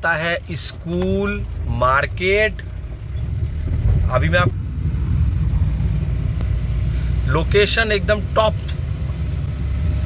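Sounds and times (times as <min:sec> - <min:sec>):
car driving rumble: 0:00.0 - 0:10.0.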